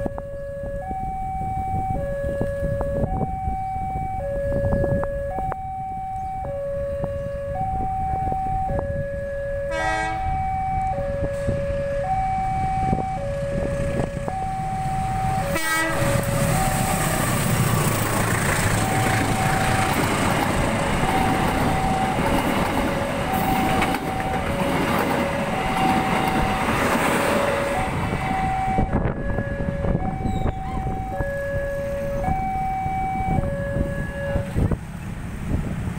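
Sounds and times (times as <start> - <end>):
train passing: 2.3 - 35.9.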